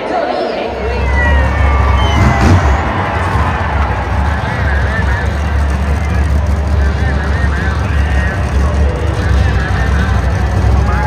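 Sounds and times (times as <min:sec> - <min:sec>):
crowd voices: 0:00.0 - 0:11.0
truck engines idling: 0:00.6 - 0:11.0.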